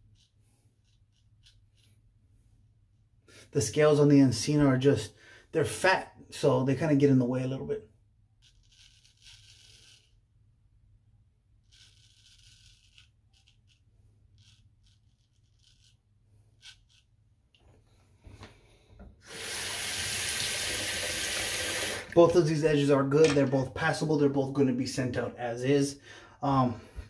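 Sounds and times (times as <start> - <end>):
razor scraping stubble: 0.0 - 2.1, 8.4 - 10.2, 11.6 - 17.9.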